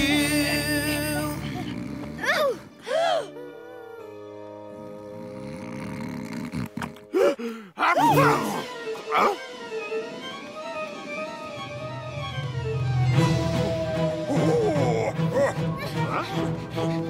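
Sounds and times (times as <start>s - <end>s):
wordless vocal sounds: 0.0s - 4.0s
cartoon background music: 0.0s - 17.0s.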